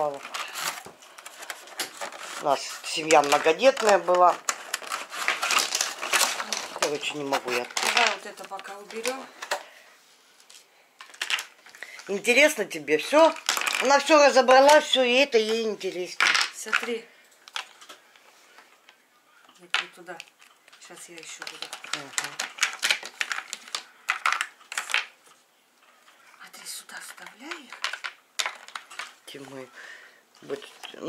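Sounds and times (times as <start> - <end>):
plastic blocks clattering: 0.0 - 9.6, 11.0 - 18.0, 19.7 - 25.4, 27.0 - 29.7
plastic toy pieces clicking: 3.0 - 9.6, 19.7 - 25.1, 27.0 - 29.2.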